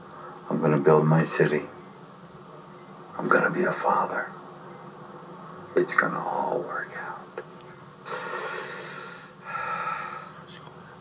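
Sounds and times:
person breathing: 8.0 - 10.4.

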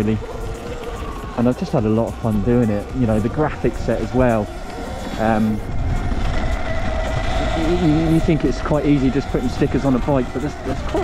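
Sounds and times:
electric motor whine: 0.0 - 11.0
low rumble: 0.0 - 11.0
wind noise: 0.0 - 11.0
person speaking: 5.2 - 5.7.

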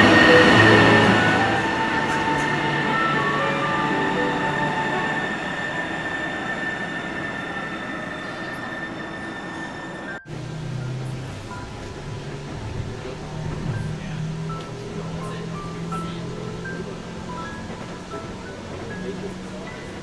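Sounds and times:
train high whine: 0.0 - 20.0
train rumble: 0.0 - 20.0.

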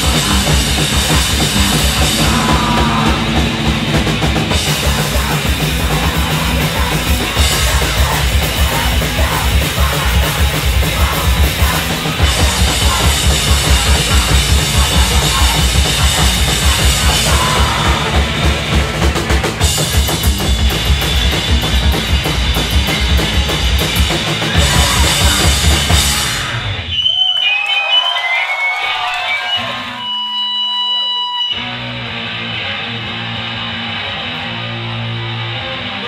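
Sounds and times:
amp hum: 0.0 - 26.8
held guitar and bass notes: 0.0 - 26.9, 31.4 - 36.0
punk band playing live: 0.0 - 28.4, 29.3 - 36.0
crowd voices: 0.0 - 34.7
amplifier feedback tones: 0.1 - 7.6.

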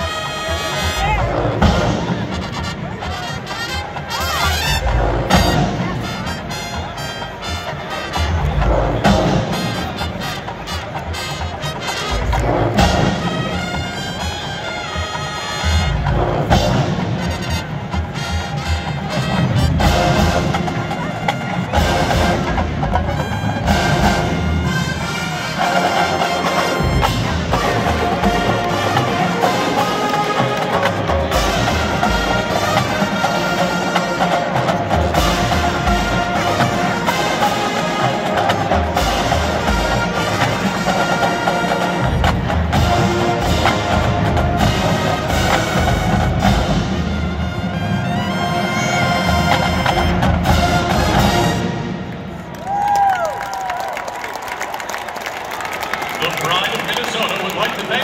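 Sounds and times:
marching band brass: 0.0 - 58.0.

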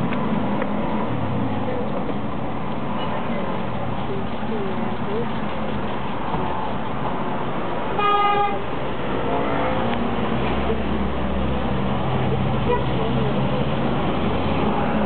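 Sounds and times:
traffic noise: 0.0 - 15.0
car horn toot: 8.0 - 8.6.

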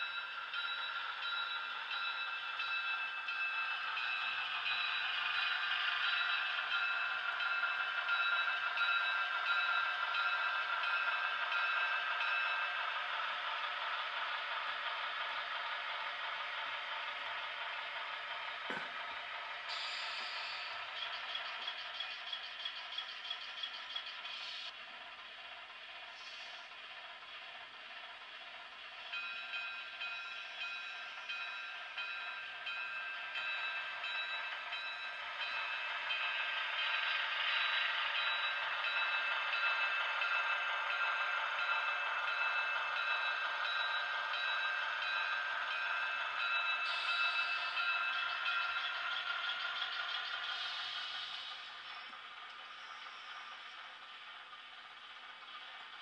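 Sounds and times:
model train engine hum: 0.0 - 56.0.

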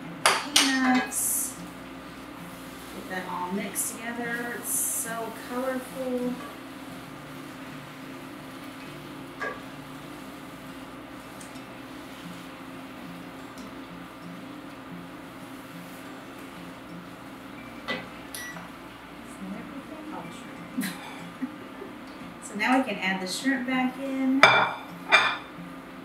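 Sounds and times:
induction cooktop humming: 0.0 - 26.0
metal tongs clinking on skillet: 17.9 - 18.7.

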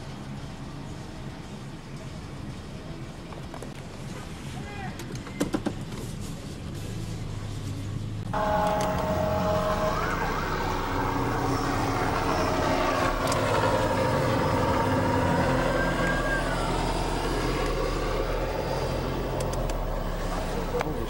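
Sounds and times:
car road noise: 5.8 - 21.0
emergency vehicle siren: 8.4 - 21.0.

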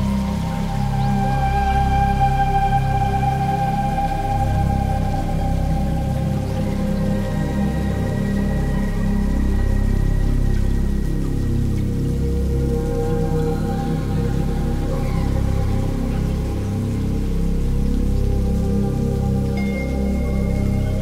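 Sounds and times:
low pulsing bass: 0.0 - 21.0
sustained synthesizer pad tones: 0.0 - 21.0.

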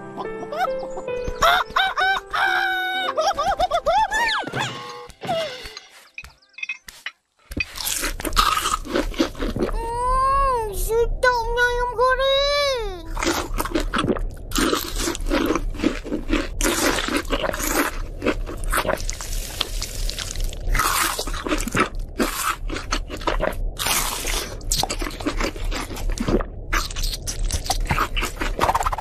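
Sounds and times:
fried chicken crunching: 7.6 - 9.8, 13.2 - 29.0
child humming: 9.7 - 11.1.

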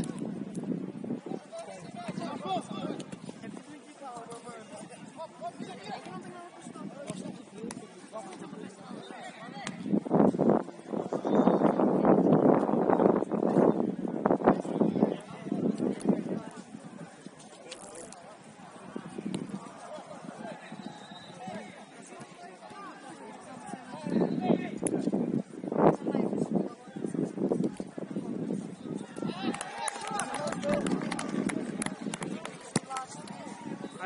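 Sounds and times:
ball kicks: 7.0 - 8.5, 9.6 - 9.9
footballers calling out: 18.7 - 24.4.

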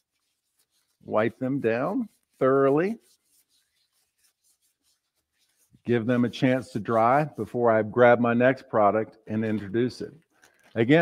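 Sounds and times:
gloved hands rubbing: 0.0 - 8.0, 8.8 - 11.0
man talking: 1.1 - 3.0, 5.9 - 10.2, 10.8 - 11.0.

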